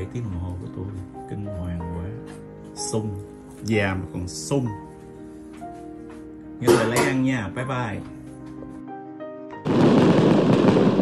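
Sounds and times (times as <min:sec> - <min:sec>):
dense crackling noise: 0:09.6 - 0:11.0.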